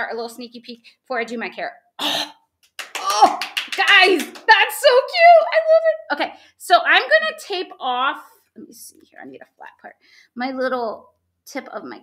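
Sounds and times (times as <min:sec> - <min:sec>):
woman clearing her throat: 0:02.0 - 0:02.4
voice sounds: 0:02.9 - 0:06.1.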